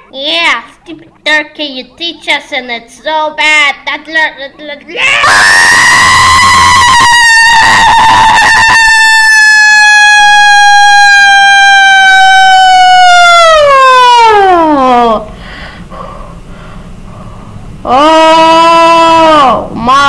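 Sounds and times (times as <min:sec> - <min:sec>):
loud high-pitched scream: 0:04.9 - 0:14.6.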